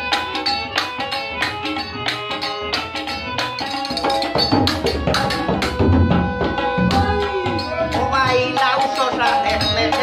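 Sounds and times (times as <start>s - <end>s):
hand drum beat: 0.0s - 10.0s.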